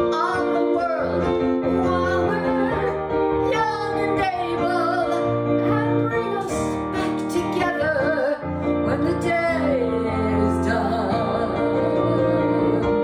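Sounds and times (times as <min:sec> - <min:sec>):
piano chords: 0:00.0 - 0:13.0
woman singing: 0:00.0 - 0:13.0.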